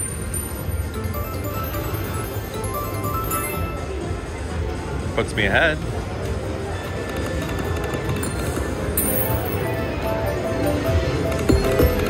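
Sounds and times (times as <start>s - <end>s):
casino background: 0.0s - 4.1s, 6.8s - 12.0s
slot machine game music and jingles: 0.0s - 4.5s, 7.0s - 12.0s.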